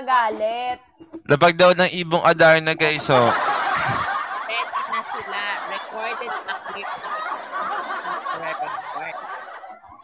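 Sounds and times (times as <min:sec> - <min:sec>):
people laughing: 0:02.5 - 0:10.0.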